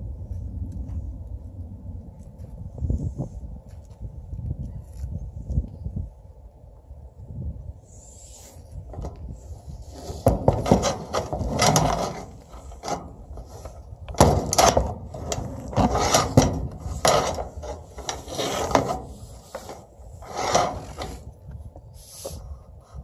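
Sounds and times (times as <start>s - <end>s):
goat rasping and rubbing: 8.9s - 21.3s.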